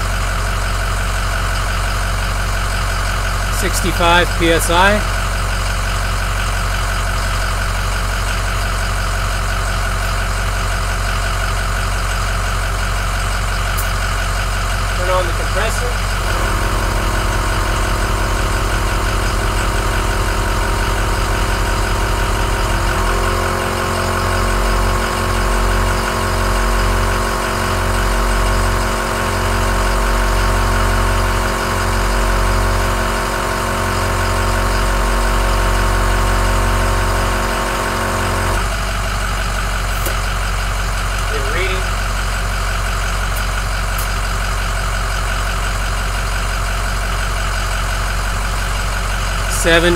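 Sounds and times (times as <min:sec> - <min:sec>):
truck engine idling: 0:00.0 - 0:49.9
air compressor humming: 0:03.4 - 0:05.4, 0:13.7 - 0:26.3, 0:36.0 - 0:49.9.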